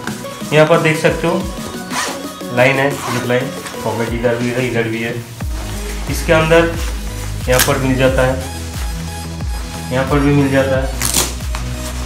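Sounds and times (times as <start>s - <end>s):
background music: 0.0s - 12.0s
zip being pulled: 1.7s - 3.4s
voice: 6.1s - 6.8s, 7.5s - 8.5s, 9.9s - 10.9s.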